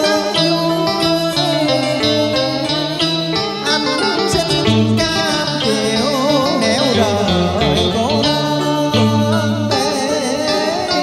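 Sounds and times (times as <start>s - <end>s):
karaoke backing track: 0.0s - 11.0s.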